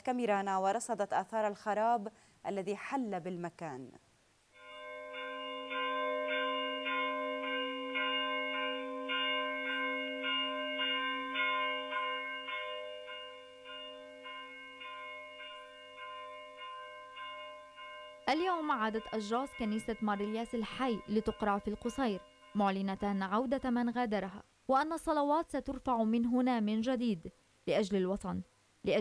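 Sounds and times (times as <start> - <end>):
church bell ringing rapidly: 4.6 - 24.0.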